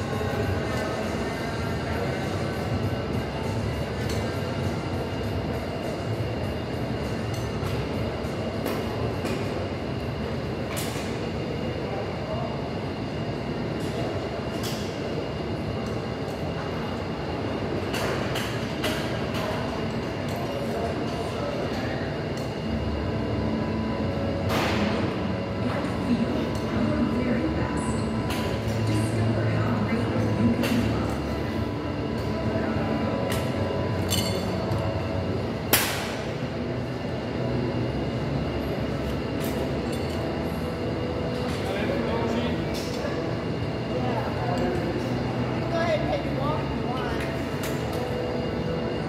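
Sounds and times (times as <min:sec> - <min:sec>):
busy gym din: 0:00.0 - 0:49.0.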